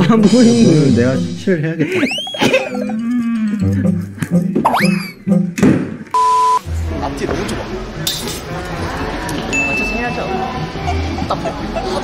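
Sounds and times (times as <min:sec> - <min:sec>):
electronic beep: 0:04.4 - 0:05.6, 0:06.2 - 0:06.7.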